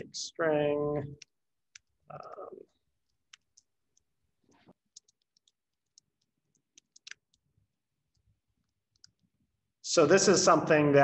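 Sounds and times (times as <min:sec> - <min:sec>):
computer keyboard keystrokes: 0:04.9 - 0:07.4.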